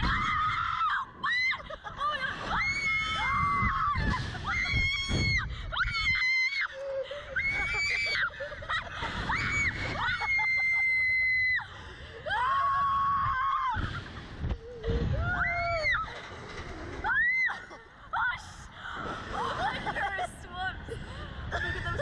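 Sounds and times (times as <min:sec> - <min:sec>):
girls screaming: 0:00.0 - 0:08.4, 0:09.3 - 0:13.9, 0:15.1 - 0:16.2, 0:17.0 - 0:18.4
wind buffeting microphone: 0:00.0 - 0:22.0.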